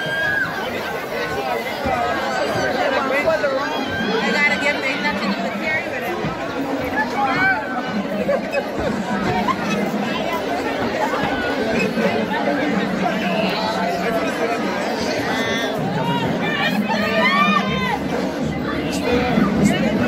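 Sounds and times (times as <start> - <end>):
voices whooping and shouting: 0.0 - 0.7, 15.4 - 18.0
large crowd chattering: 0.0 - 20.0.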